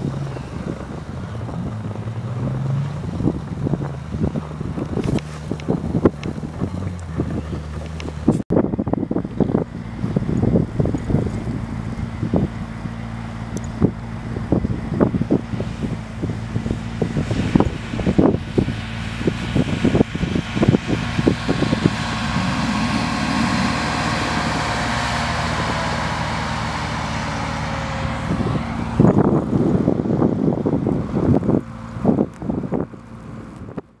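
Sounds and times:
car engine revving: 0.0 - 8.4, 9.5 - 33.8
wind buffeting microphone: 0.0 - 34.0.

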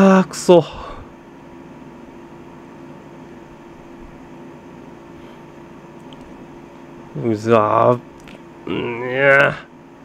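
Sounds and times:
air conditioner running: 0.0 - 10.0.

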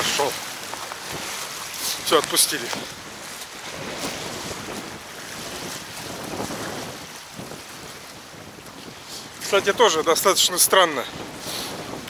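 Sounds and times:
waves lapping against riverbank: 0.0 - 12.0
wind buffeting microphone: 0.0 - 12.0.

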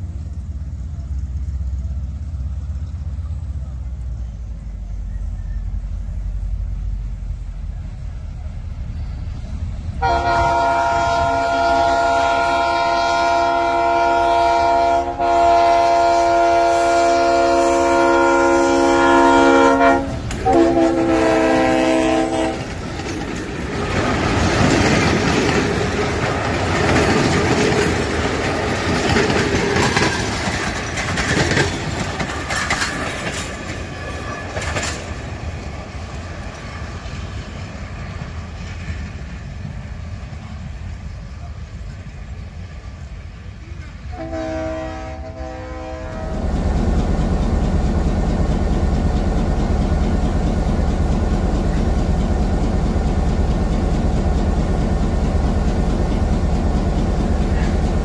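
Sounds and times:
train coaches rumbling past: 0.0 - 58.0
train wheels clacking over rail joints: 8.9 - 41.2, 44.2 - 58.0
locomotive horn blast: 10.0 - 22.8, 44.1 - 46.4.

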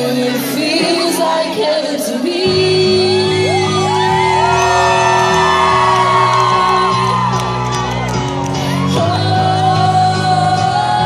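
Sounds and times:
woman singing: 0.0 - 7.6, 8.6 - 11.0.

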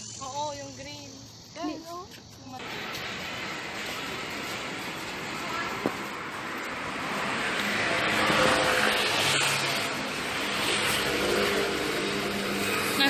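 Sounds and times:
passing vehicle rushing: 2.6 - 13.0.

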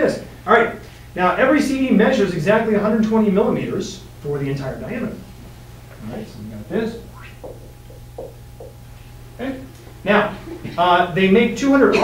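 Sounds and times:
low hum: 5.3 - 10.6.

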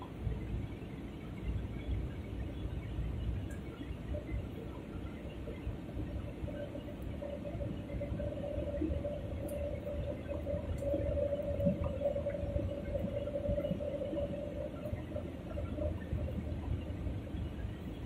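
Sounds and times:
airliner cabin engine rumble: 0.0 - 18.0.

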